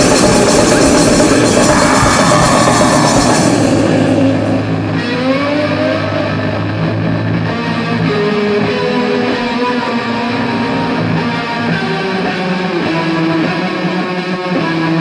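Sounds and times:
drums with crashing cymbals: 0.0s - 4.9s
bass guitar: 0.0s - 15.0s
distorted electric guitar: 0.0s - 15.0s.

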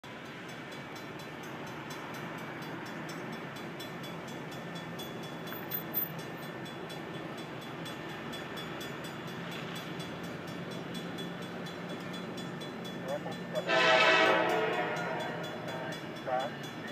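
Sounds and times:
railroad crossing bell ringing: 0.1s - 16.9s.

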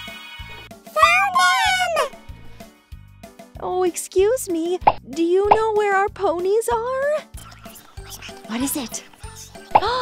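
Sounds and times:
children's background music: 0.0s - 10.0s
child's excited squeal: 1.0s - 2.2s.

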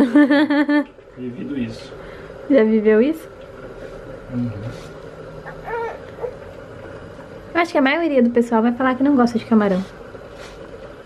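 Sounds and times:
faint steady hum: 0.0s - 11.0s
baby cooing: 5.4s - 6.5s.

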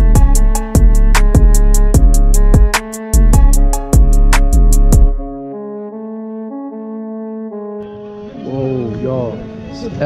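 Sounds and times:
pounding beat: 0.0s - 5.4s
slow melody of long notes: 0.0s - 10.0s
voices: 8.2s - 10.0s.

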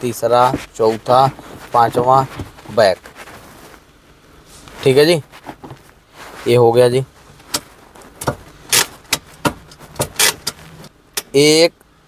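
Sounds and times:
handbrake ratchet clicking: 7.5s - 10.6s.

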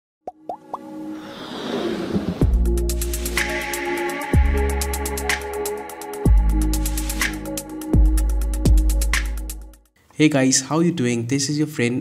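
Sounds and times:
rising music swell: 0.7s - 6.2s.

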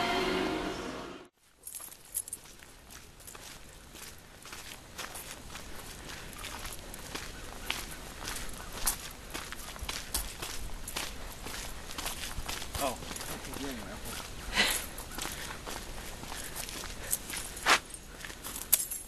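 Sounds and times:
footsteps on snowy concrete: 1.4s - 19.0s.

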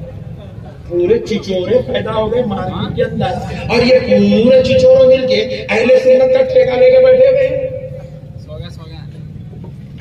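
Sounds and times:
low steady hum: 0.0s - 8.5s.

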